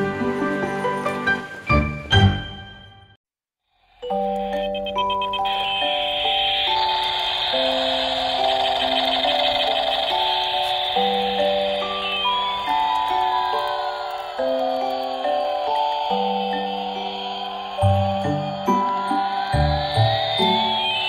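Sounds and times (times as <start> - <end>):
siren-like falling tone: 4.0 - 21.0
toy beeping electronic tune: 4.0 - 21.0
high hiss: 5.1 - 21.0.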